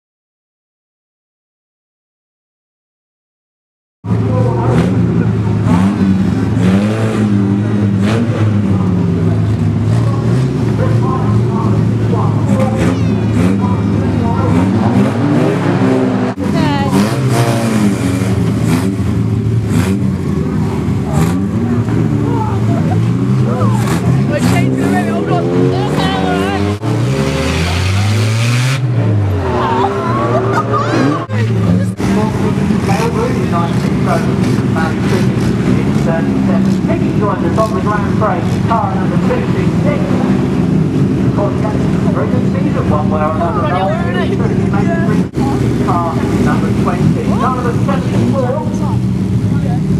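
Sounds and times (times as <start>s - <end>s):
car engines revving: 4.1s - 49.9s.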